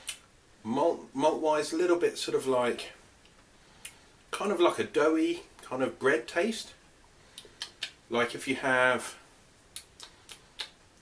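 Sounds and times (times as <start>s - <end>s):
wet lip smacking clicks: 0.0s - 0.3s, 7.3s - 8.0s, 9.7s - 11.0s.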